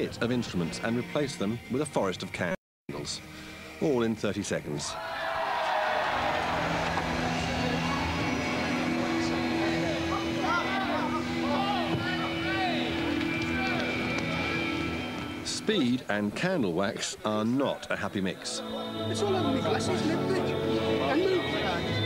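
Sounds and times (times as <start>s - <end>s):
steady held chord: 6.1s - 15.6s
background voices: 6.2s - 12.4s, 16.2s - 22.0s.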